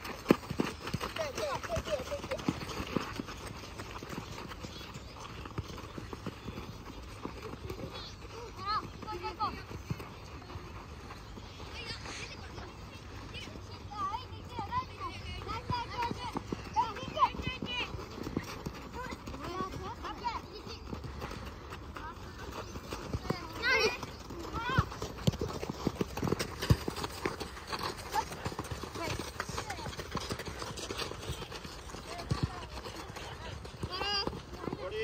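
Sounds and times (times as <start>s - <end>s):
running footsteps: 0.0s - 35.0s.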